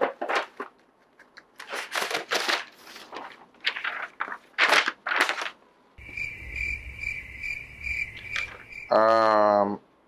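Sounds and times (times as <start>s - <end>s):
crickets chirping: 6.0s - 9.5s.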